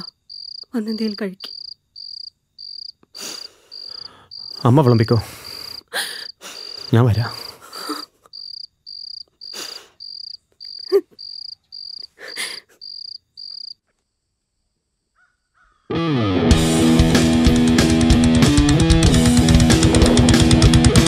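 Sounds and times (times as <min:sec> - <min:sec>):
crickets chirping: 0:00.0 - 0:15.3
man breathing heavily: 0:03.2 - 0:04.6, 0:05.2 - 0:08.2, 0:09.5 - 0:10.0
electric guitar music: 0:15.9 - 0:21.0.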